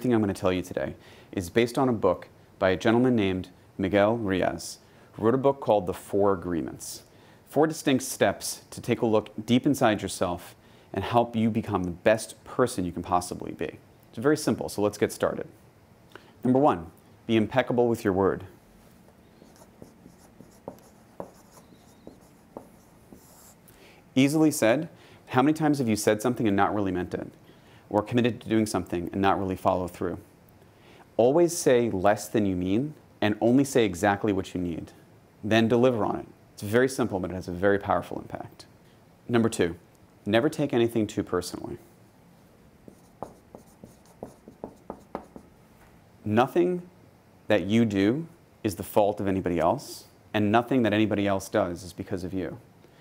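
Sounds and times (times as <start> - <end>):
marker pen scratching on paper: 19.4 - 23.6, 42.9 - 45.5.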